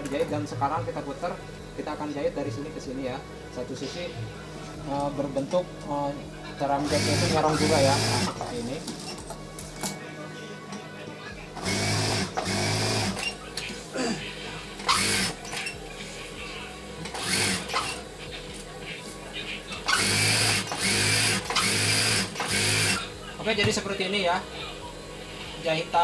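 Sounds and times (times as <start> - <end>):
sewing machine stitching: 11.6 - 13.3, 14.9 - 15.6, 17.1 - 18.0, 19.9 - 23.0.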